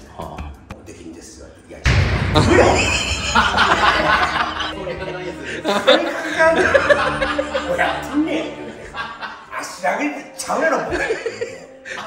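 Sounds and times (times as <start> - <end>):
men laughing: 2.4 - 9.8, 10.8 - 12.0
men talking loudly: 3.6 - 12.0.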